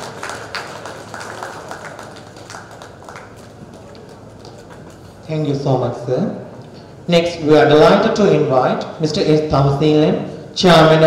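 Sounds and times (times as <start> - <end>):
light scattered applause: 0.0 - 5.3.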